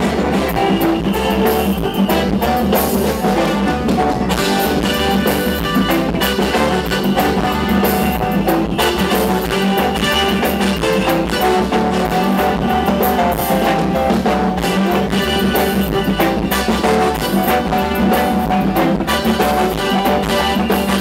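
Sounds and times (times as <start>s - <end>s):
live band playing: 0.0s - 21.0s.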